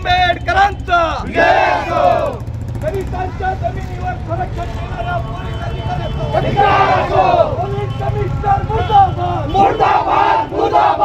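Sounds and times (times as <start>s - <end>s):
crowd talking: 0.0s - 11.0s
road traffic rumble: 0.0s - 11.0s.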